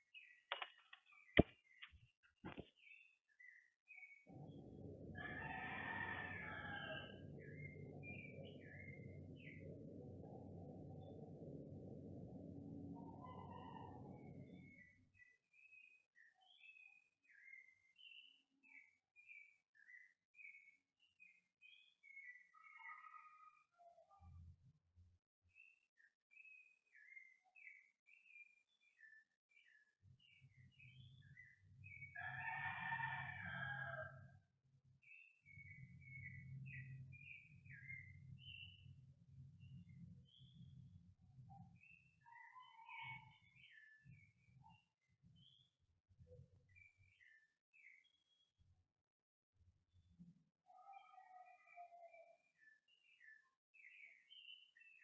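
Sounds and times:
faint bird chirps and twitters: 0.0s - 24.7s, 25.4s - 48.8s, 49.9s - 55.0s.

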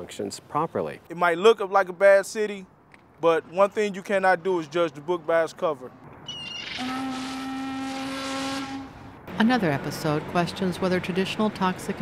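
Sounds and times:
ship's horn blast: 6.6s - 9.2s.

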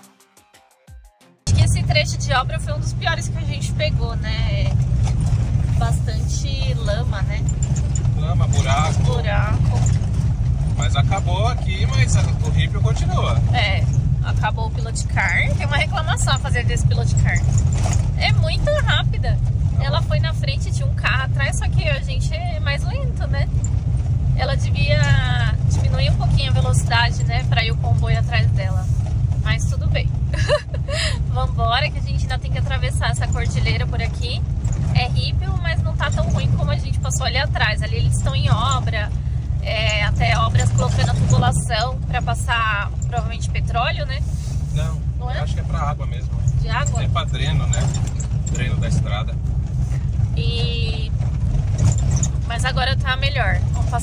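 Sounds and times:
engine and road rumble: 1.4s - 54.0s
voices: 1.5s - 4.9s, 5.6s - 23.6s, 24.3s - 51.2s, 51.9s - 54.0s.

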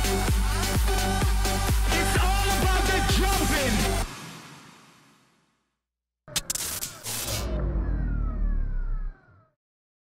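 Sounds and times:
deep bass rumble: 7.4s - 9.5s.

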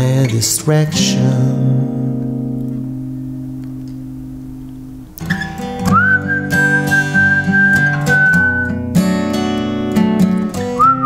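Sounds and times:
acoustic guitar strumming: 0.0s - 11.0s
high whistled melody: 5.3s - 8.8s, 10.6s - 11.0s.

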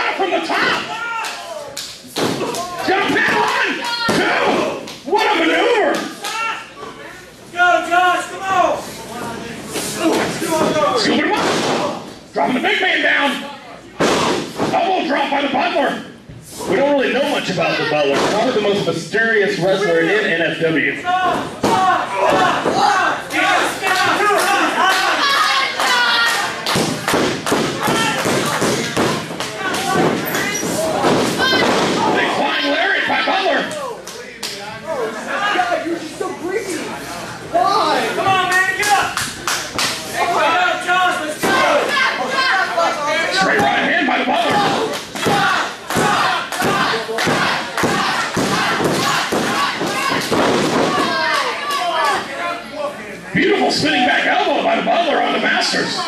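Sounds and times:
people shouting: 0.0s - 1.7s, 2.3s - 6.7s, 21.0s - 33.9s, 40.2s - 52.5s
voices in hall: 0.0s - 56.0s.

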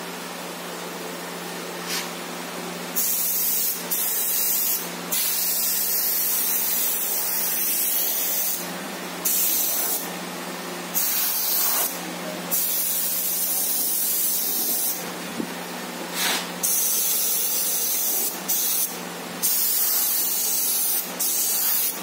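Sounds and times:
airbrush spraying paint: 1.8s - 2.2s, 3.0s - 8.6s, 9.2s - 10.0s, 10.9s - 15.0s, 16.1s - 22.0s.

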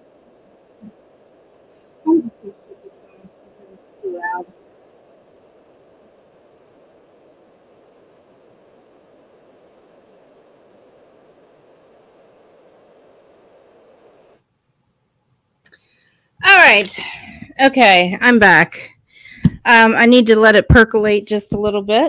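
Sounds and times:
faint room hum: 0.0s - 22.0s.

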